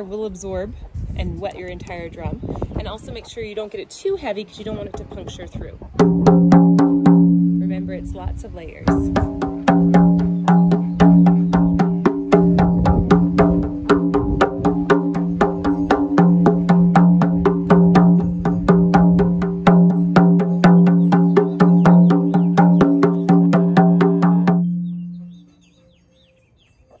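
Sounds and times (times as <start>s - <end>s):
frame drum struck by hand: 6.0s - 8.2s, 8.8s - 25.1s.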